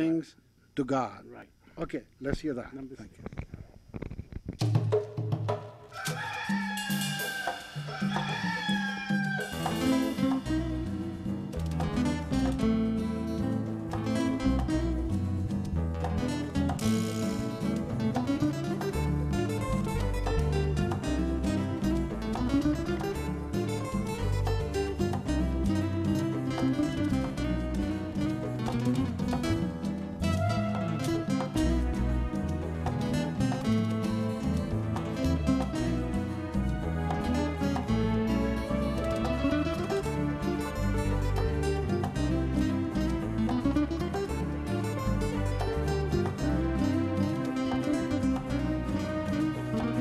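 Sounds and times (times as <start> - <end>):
rooster crowing: 5.9 - 10.1
fingerpicked classical guitar: 9.6 - 50.0.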